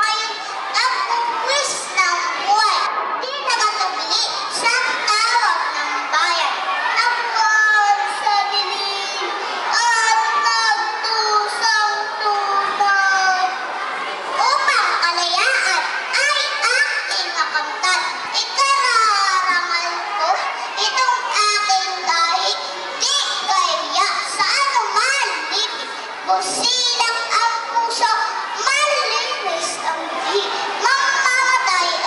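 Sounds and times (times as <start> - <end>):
children speaking: 0.0 - 32.0.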